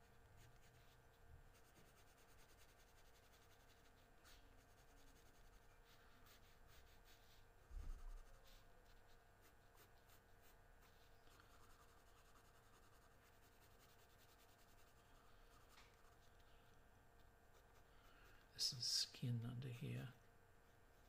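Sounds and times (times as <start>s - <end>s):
pencil scratching on paper: 0.3s - 16.4s
soft low thump: 7.7s - 8.2s.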